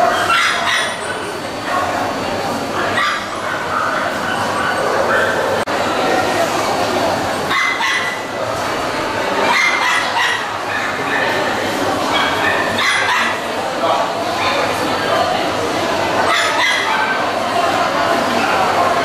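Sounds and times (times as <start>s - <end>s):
small dogs yapping: 0.0s - 2.0s, 2.8s - 5.6s, 7.5s - 8.3s, 9.4s - 13.5s, 16.2s - 17.3s
hubbub of many voices: 0.0s - 19.0s.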